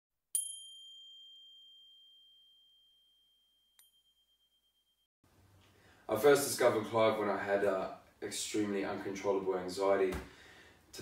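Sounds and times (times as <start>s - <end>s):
soft ding: 0.4s - 5.0s
high-pitched bell chime: 0.4s - 5.1s.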